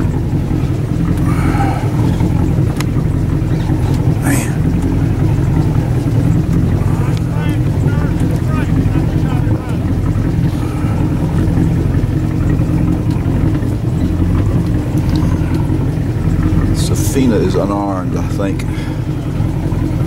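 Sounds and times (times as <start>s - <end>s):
boat engine humming: 0.0s - 20.0s
faint voices calling: 0.1s - 20.0s.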